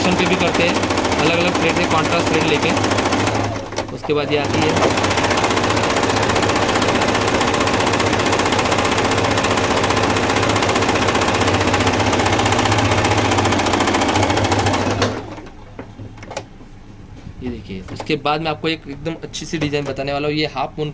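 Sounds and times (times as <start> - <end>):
electric sewing machine running: 0.0 - 15.5.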